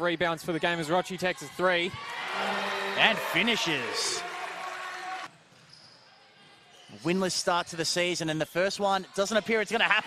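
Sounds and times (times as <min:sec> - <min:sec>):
arena crowd noise: 0:00.0 - 0:10.0.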